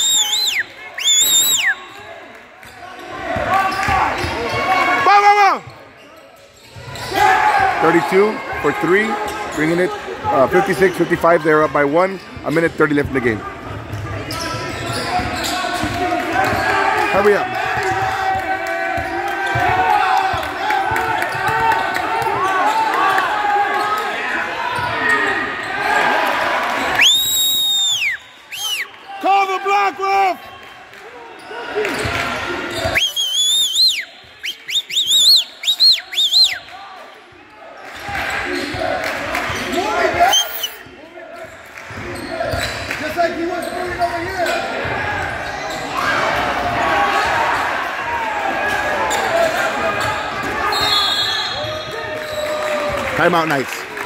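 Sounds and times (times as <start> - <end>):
crowd chatter and shouts: 0.0 - 54.0
sneaker squeaks: 5.6 - 7.2, 13.7 - 16.7, 31.4 - 36.6, 38.0 - 46.5.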